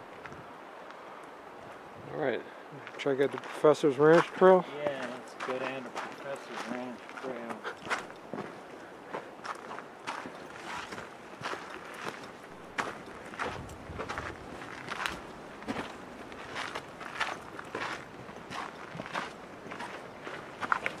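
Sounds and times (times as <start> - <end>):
footsteps on dirt trail: 2.6 - 21.0.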